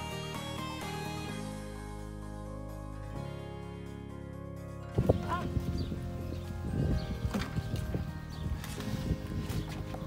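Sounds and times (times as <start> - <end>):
background music: 0.0 - 10.0
wooden knocks and clatter: 7.0 - 8.9.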